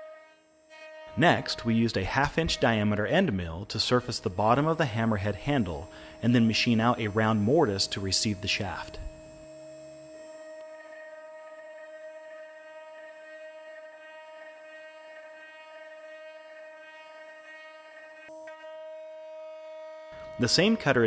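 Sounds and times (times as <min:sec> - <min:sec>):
router spindle high whine: 0:00.0 - 0:21.0
end mill cutting into wood: 0:00.8 - 0:18.2.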